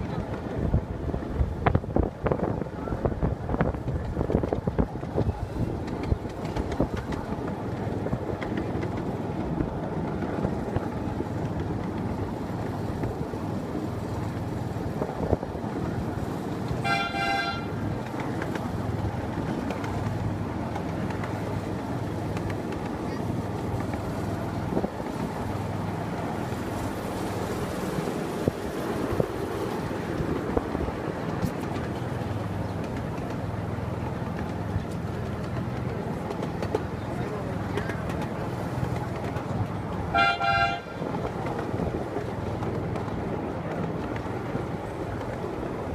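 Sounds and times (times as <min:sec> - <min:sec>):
miniature train rumbling: 0:00.0 - 0:45.9
train horn toot: 0:16.8 - 0:17.8, 0:40.1 - 0:41.0.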